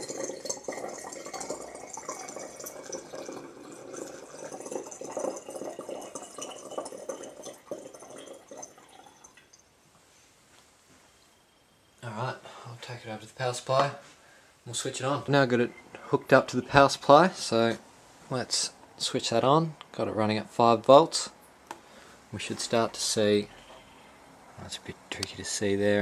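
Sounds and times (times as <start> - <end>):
water pouring through funnel into jar: 0.0 - 9.6.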